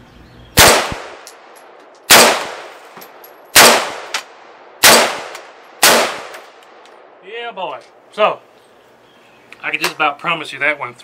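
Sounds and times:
rifle shots: 0.6 - 7.1.

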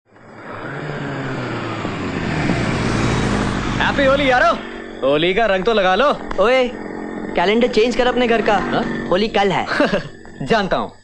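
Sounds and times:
motorcycle engines approaching: 0.1 - 11.0.

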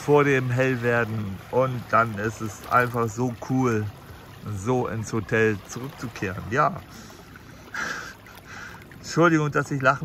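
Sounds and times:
man's breathy silent laugh: 7.6 - 8.7.

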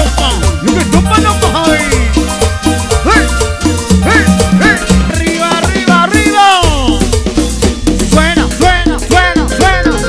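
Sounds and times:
cowbell-like percussion: 0.0 - 10.0
live dance band music: 0.0 - 10.0.

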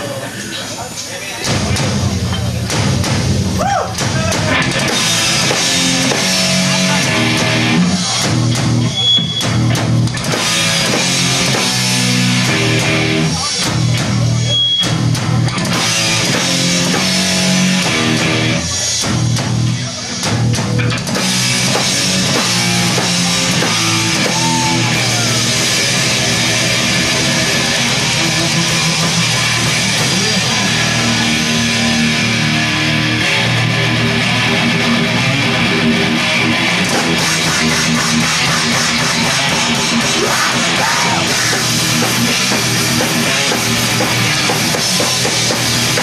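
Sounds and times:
distorted electric guitar riffs: 0.0 - 46.0
bass guitar: 1.4 - 46.0
drum kit: 1.4 - 46.0.

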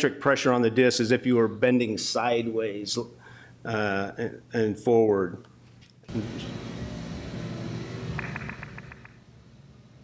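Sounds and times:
drill press rumble and hum: 6.1 - 10.0
quick clicks: 8.2 - 9.2.

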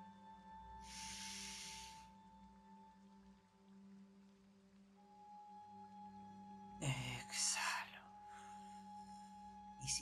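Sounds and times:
faint background music drone: 0.0 - 10.0.

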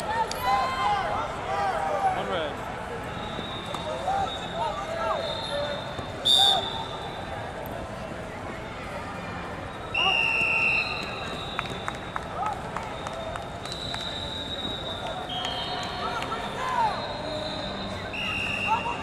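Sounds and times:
faint whistles: 3.0 - 7.4, 9.7 - 19.0
referee whistle blasts: 3.2 - 7.3, 9.8 - 12.0, 13.0 - 19.0.

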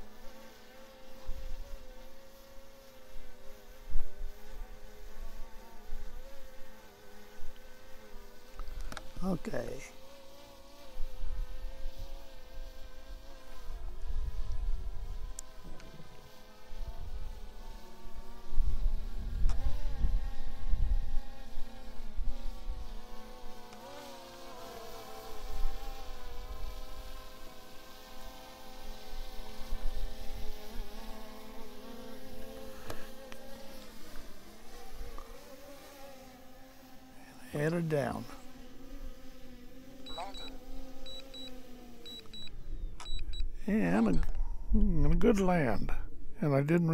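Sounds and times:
drone propellers buzzing: 0.0 - 45.2.

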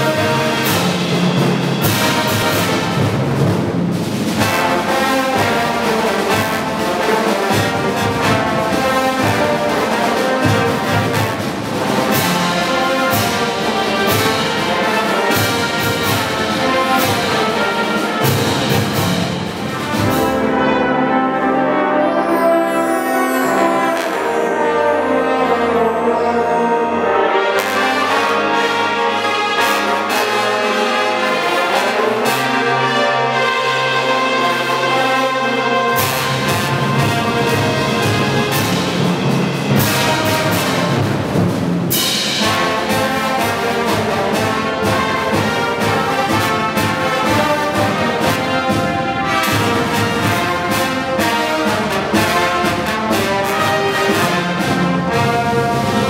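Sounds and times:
snare and bass drums: 0.0 - 20.5, 36.0 - 56.0
brass band playing: 0.0 - 56.0.

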